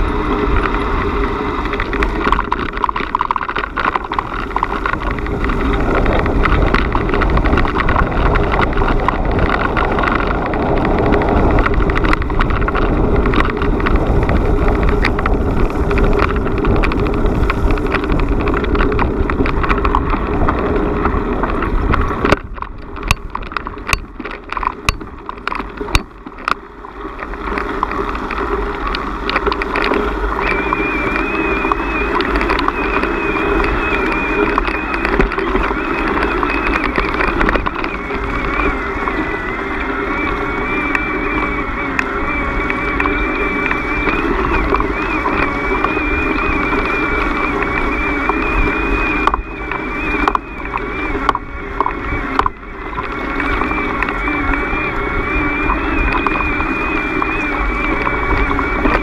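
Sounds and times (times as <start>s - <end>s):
low rumble: 0.0s - 59.0s
wind noise on microphone: 0.0s - 59.0s.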